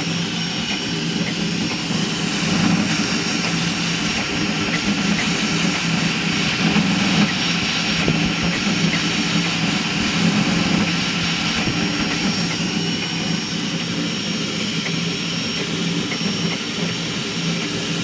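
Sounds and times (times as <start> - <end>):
cooling fan rushing: 0.0 - 18.0.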